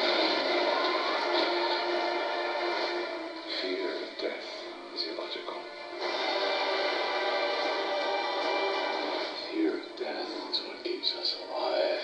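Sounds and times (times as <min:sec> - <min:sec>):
film trailer music: 0:00.0 - 0:12.0.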